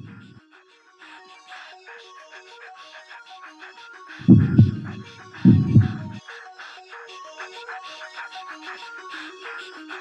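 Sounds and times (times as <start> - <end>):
light ticking percussion: 4.3 - 6.2.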